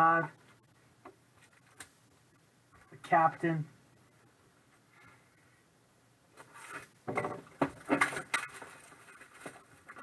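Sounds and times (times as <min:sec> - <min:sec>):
packaging crinkling and scraping: 0:06.4 - 0:07.0, 0:07.6 - 0:10.0.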